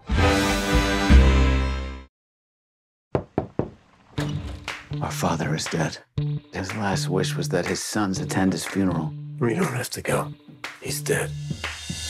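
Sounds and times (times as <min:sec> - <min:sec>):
knocks on a door: 0:03.2 - 0:03.8.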